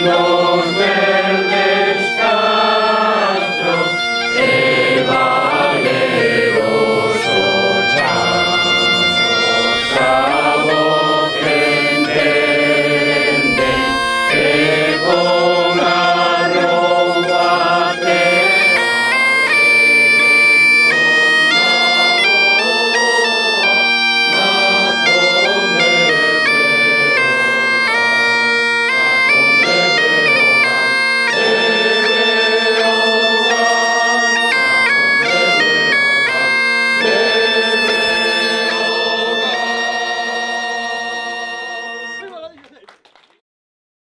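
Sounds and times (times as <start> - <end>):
bagpipe melody with drone: 0.0 - 42.6.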